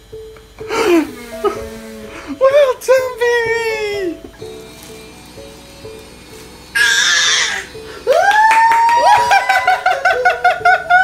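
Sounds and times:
soft background music: 0:00.0 - 0:11.0
baby squealing: 0:06.8 - 0:07.7
baby's loud pulsing cry: 0:06.8 - 0:07.8.

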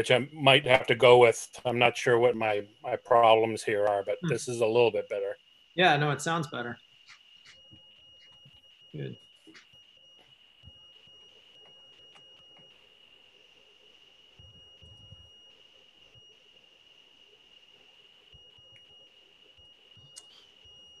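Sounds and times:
high-pitched whining tone: 0:00.0 - 0:16.4.

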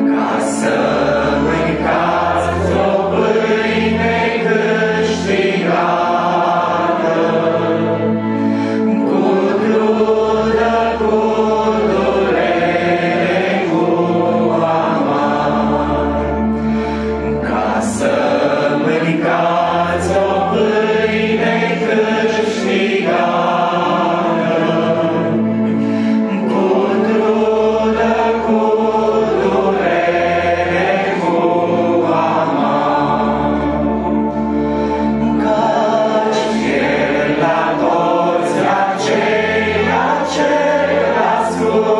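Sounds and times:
electronic keyboard accompaniment: 0:00.0 - 0:41.9
two men singing a hymn: 0:00.0 - 0:41.9.

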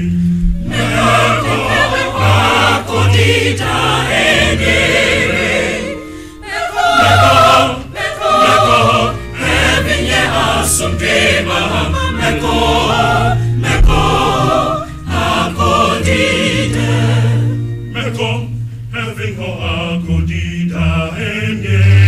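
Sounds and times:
low bass line: 0:00.0 - 0:06.1, 0:08.7 - 0:22.0
choir singing: 0:00.0 - 0:22.0.

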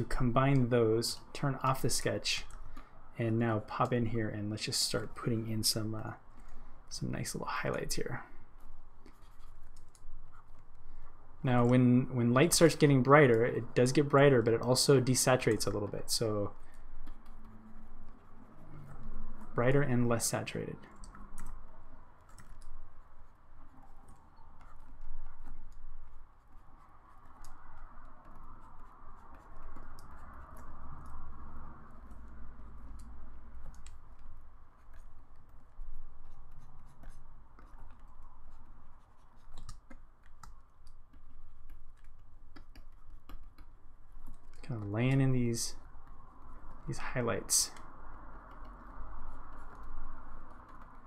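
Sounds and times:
stylus scratching on tablet: 0:00.0 - 0:51.0.

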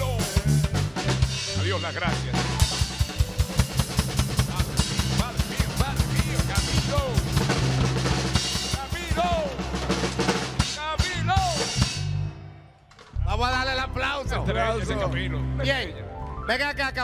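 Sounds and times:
drum kit playing: 0:00.0 - 0:13.5.

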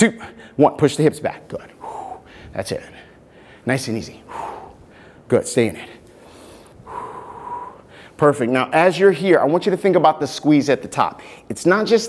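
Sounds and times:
man breathing out hard: 0:01.8 - 0:02.5, 0:04.2 - 0:05.3, 0:06.1 - 0:08.2.

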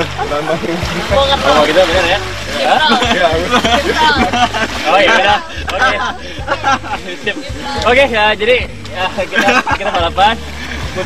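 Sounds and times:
men laughing and chattering: 0:00.0 - 0:11.0.

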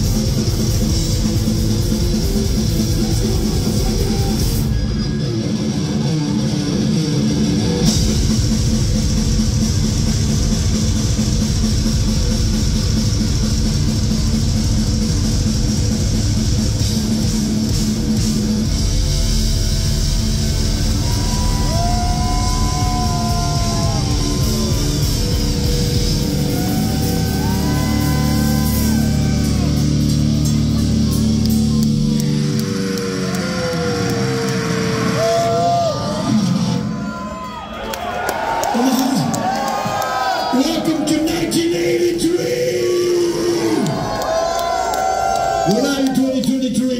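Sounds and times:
heavy metal band playing: 0:00.0 - 0:37.4, 0:38.8 - 0:44.4.

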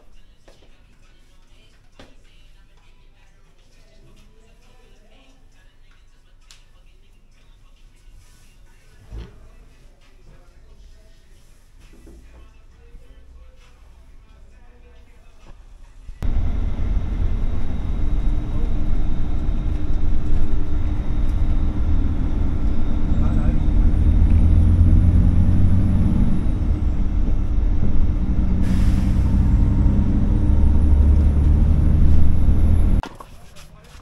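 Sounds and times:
bus engine and road rumble: 0:15.7 - 0:33.0
faint high whine: 0:16.2 - 0:24.0.

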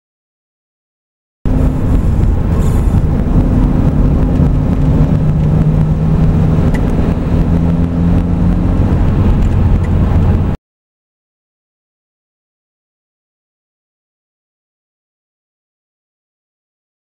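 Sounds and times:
car engine running in cabin: 0:01.5 - 0:10.6
road noise: 0:01.5 - 0:10.6.

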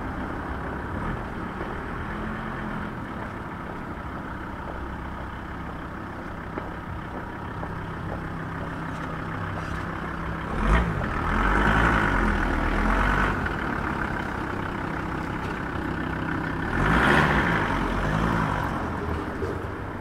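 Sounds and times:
van engine idling: 0:00.0 - 0:20.0.

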